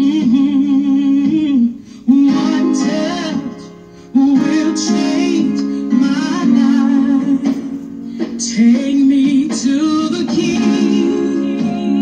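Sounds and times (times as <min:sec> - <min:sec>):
gospel song with singer: 0:00.0 - 0:12.0.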